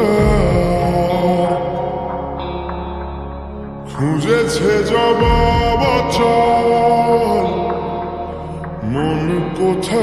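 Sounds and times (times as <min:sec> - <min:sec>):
slowed song with reverb: 0:00.0 - 0:10.0
steady low bass: 0:00.0 - 0:10.0.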